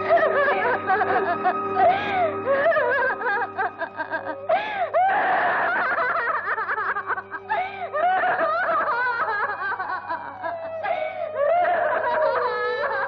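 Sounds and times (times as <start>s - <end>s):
woman sobbing and wailing: 0.0s - 13.0s.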